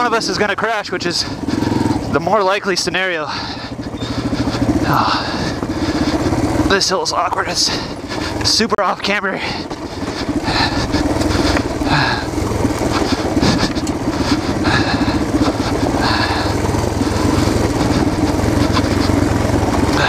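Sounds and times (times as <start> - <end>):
motorbike engine at low revs: 0.0 - 20.0.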